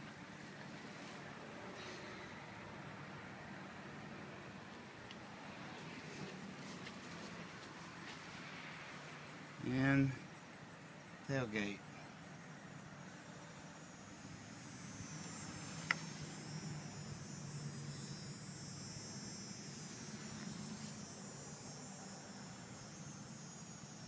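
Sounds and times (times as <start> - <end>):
high trill of insects: 0.0 - 24.0.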